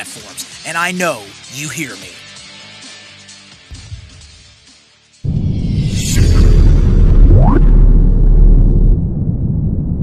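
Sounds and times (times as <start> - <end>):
deep cinematic boom: 5.3 - 10.0.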